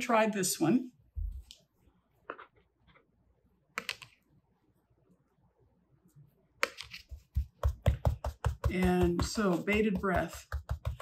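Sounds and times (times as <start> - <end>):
brush tapping on palette: 6.6 - 11.0.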